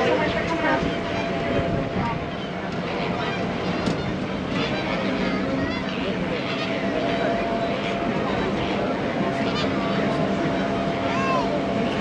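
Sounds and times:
tram motor hum and rolling: 0:00.0 - 0:12.0.

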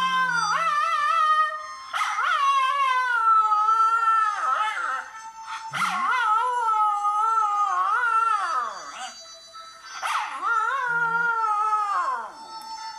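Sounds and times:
dog howling: 0:00.0 - 0:09.2, 0:10.0 - 0:12.4
recorded howl from phone: 0:00.0 - 0:12.9.

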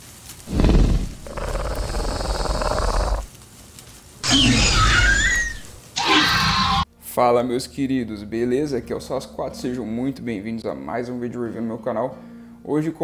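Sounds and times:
low rough growl: 0:00.4 - 0:03.3
shrill screech gliding down: 0:04.2 - 0:06.8.

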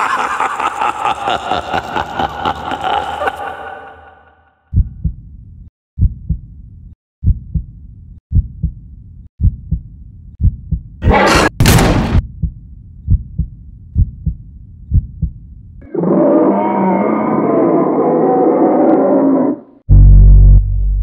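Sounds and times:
heartbeat thumps: 0:04.7 - 0:05.3, 0:06.0 - 0:06.5, 0:07.2 - 0:08.8, 0:09.4 - 0:11.0, 0:12.2 - 0:15.4.

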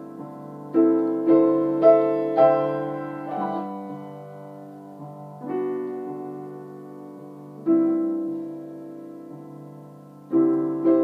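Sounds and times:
slow grand piano chords: 0:00.0 - 0:11.0.

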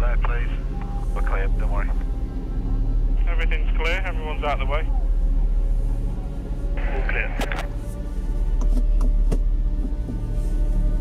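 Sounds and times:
tense music with low drone: 0:00.0 - 0:11.0
tinny radio voice: 0:06.8 - 0:07.7.

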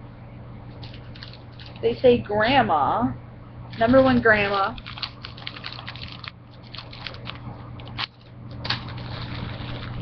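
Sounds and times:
steady low hum: 0:00.0 - 0:10.0
plastic packets crinkling: 0:00.8 - 0:01.8, 0:03.7 - 0:10.0.

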